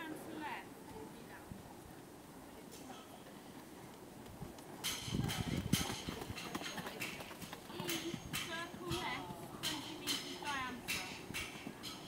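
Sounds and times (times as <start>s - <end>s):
pony hooves trotting on sand: 3.5s - 12.0s.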